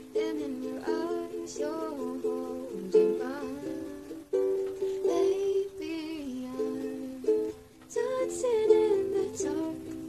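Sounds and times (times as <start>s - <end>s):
girl singing softly: 0.0s - 10.0s
ukulele strumming chords: 0.0s - 10.0s.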